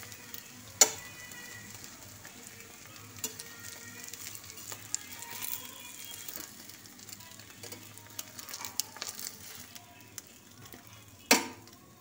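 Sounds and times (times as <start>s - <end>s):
bread frying in oil: 0.0s - 12.0s.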